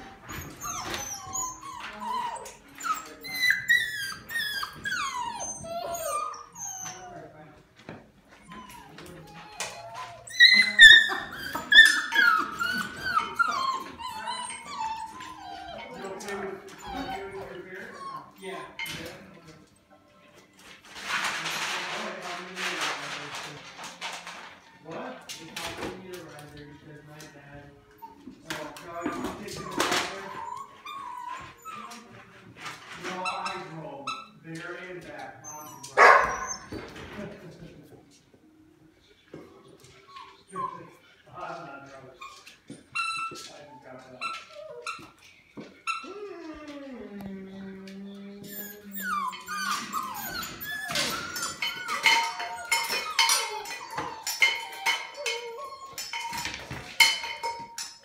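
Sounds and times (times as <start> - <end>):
puppy yelp: 0.0 - 7.2, 8.4 - 18.8, 29.0 - 32.0, 35.4 - 36.9, 42.2 - 45.2, 48.4 - 57.8
puppies whining and yipping: 0.0 - 7.4, 8.3 - 19.3, 27.8 - 32.3, 33.0 - 37.0, 39.8 - 58.0.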